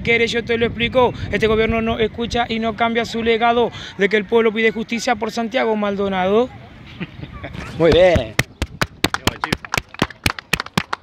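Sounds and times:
hand clapping: 7.9 - 11.0.

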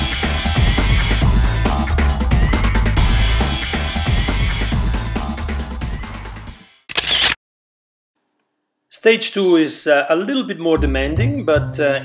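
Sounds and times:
background music: 0.0 - 6.6, 10.6 - 12.0.

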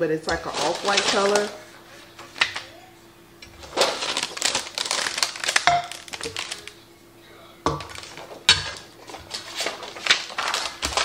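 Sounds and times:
plastic wrapping crinkling: 0.2 - 2.8, 3.4 - 6.8, 7.7 - 11.0.

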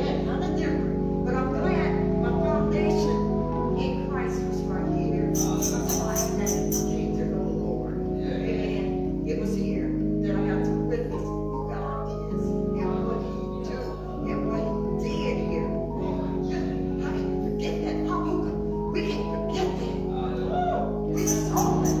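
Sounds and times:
electric keyboard chords: 0.0 - 22.0
indistinct voices: 0.0 - 22.0.

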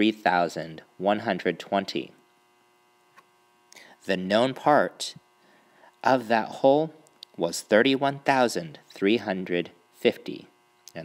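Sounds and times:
faint electrical mains hum: 0.0 - 11.0
soft breath-like noise: 5.4 - 6.0.

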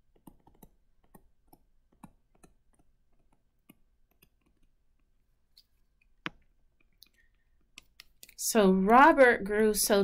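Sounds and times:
stylus tapping on tablet screen: 0.1 - 7.0.

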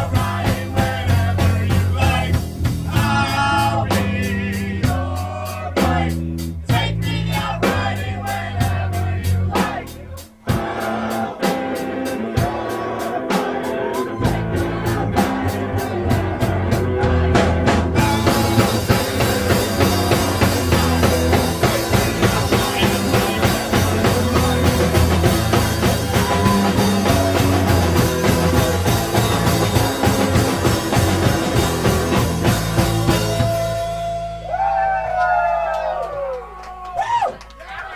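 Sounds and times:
live rock band playing: 0.0 - 34.7.

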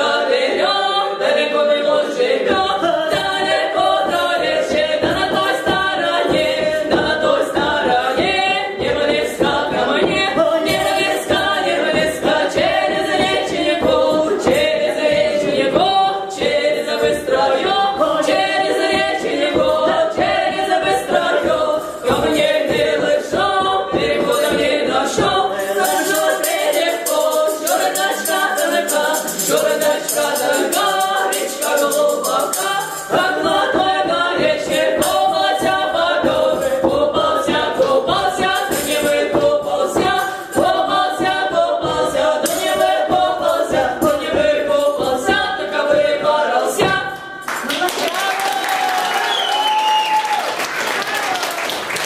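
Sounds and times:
women singing folk song a cappella: 0.0 - 50.1
fast rhythmic clatter: 2.3 - 48.8.

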